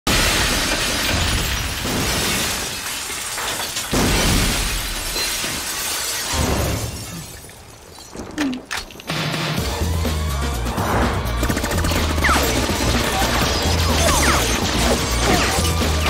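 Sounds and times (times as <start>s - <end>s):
glass skylight shattering: 0.1s - 9.2s, 12.4s - 16.0s
breaking and falling glass: 0.1s - 9.6s, 12.1s - 16.0s.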